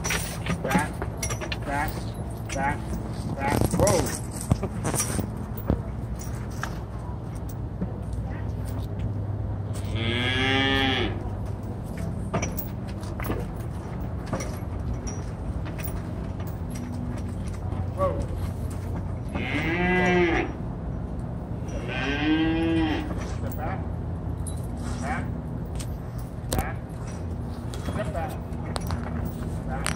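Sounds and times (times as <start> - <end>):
cattle mooing: 9.8 - 11.2, 19.3 - 20.6, 21.7 - 23.3.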